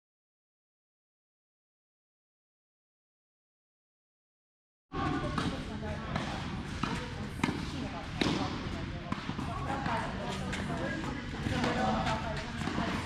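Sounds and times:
tennis balls hit with rackets: 5.0s - 13.0s.

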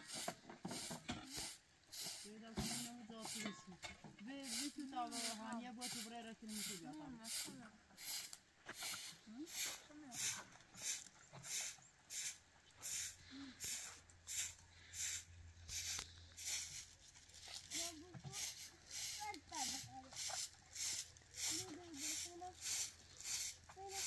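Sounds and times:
broom sweeping dirt ground: 0.0s - 24.0s
children's voices: 17.7s - 20.2s, 21.4s - 23.0s, 23.6s - 24.0s.

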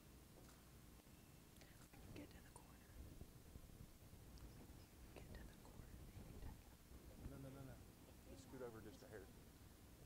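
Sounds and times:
faint indistinct voices: 4.4s - 9.5s.

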